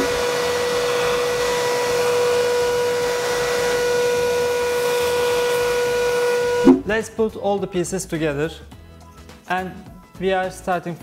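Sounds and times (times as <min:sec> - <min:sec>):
vacuum cleaner whining: 0:00.0 - 0:06.9
switch-off thump: 0:06.6 - 0:06.9.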